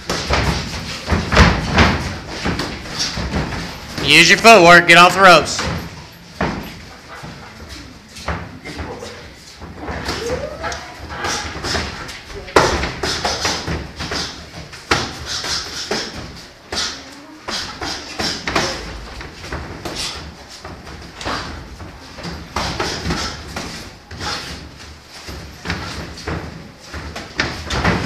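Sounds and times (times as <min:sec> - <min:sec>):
boxing gloves thudding: 0:00.0 - 0:03.9.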